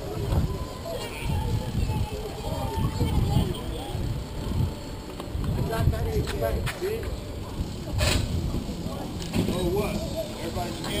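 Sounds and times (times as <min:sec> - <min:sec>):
passers-by's voices: 0:00.0 - 0:11.0
wind and road rumble: 0:00.0 - 0:11.0.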